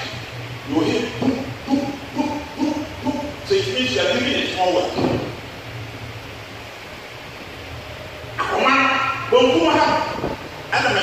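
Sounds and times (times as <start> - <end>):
background hiss: 0.0 - 11.0
faint low hum: 0.0 - 11.0
voice speaking: 0.7 - 5.2.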